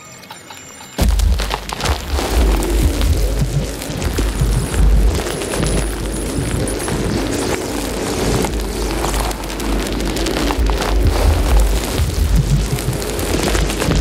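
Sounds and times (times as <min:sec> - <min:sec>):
crackling electronic noise: 0:00.9 - 0:14.0
heavy sub-bass rumble: 0:01.0 - 0:14.0.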